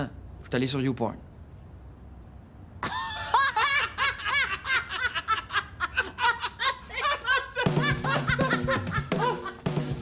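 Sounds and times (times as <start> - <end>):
woman laughing high-pitched: 2.8 - 9.7.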